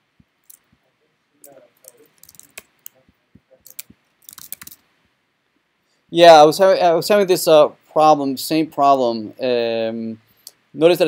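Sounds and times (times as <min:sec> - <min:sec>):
mouse and keyboard clicks: 0:01.4 - 0:03.0, 0:03.6 - 0:04.8.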